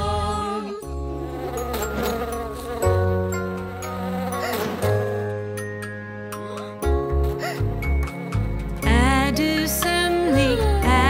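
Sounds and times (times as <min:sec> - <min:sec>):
cartoon bee buzzing: 0:01.1 - 0:05.5.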